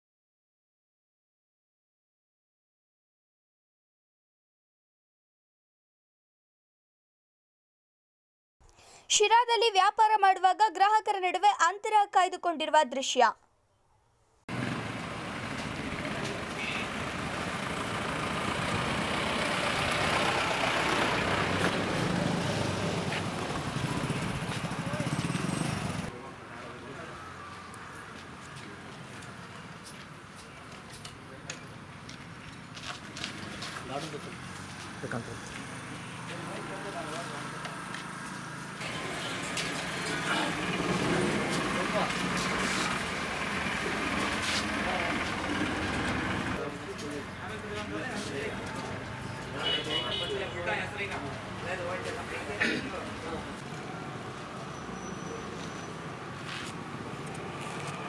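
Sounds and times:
traffic rumble: 14.5s - 58.0s
vehicle engines passing: 14.5s - 58.0s.

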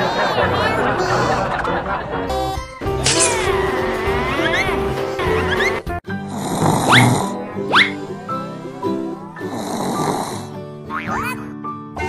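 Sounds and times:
background music: 0.0s - 12.0s
comic snoring sound effect: 6.2s - 7.4s, 9.4s - 10.6s.

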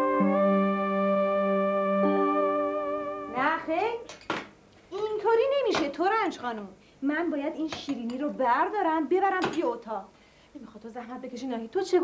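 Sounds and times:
held music chord: 0.0s - 3.6s
woman's voice: 3.3s - 4.1s, 5.0s - 12.0s.

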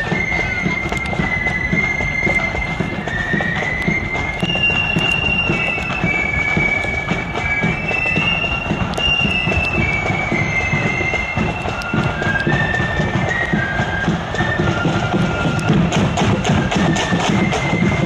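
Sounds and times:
drums beating: 0.0s - 18.0s
flute band playing melody: 0.0s - 18.0s
marching feet shuffling: 0.0s - 18.0s.

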